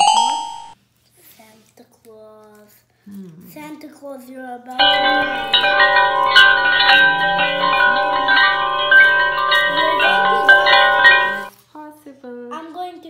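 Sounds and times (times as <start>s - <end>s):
bell-like chiming melody: 4.8s - 11.5s.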